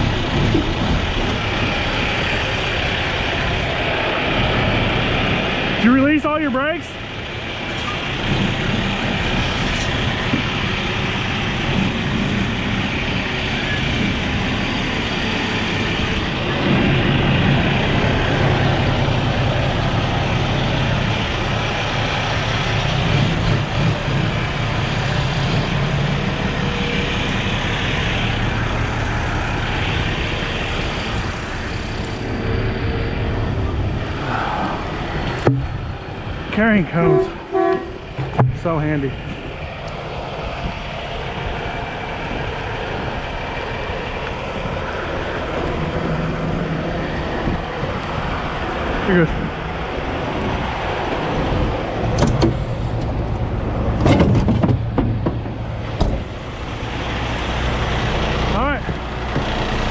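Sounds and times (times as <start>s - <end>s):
diesel truck engine pulling away: 0.0s - 59.9s.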